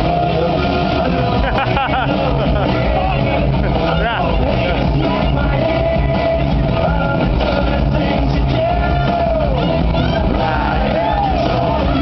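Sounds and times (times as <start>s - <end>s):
crowd shouting: 0.0s - 12.0s
loud club music: 0.0s - 12.0s.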